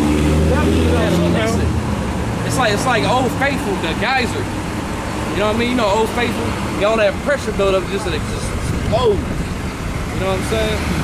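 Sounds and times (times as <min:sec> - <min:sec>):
vehicle engine droning: 0:00.0 - 0:11.0
people talking: 0:00.4 - 0:01.8, 0:02.4 - 0:04.5, 0:05.3 - 0:09.5, 0:10.1 - 0:11.0.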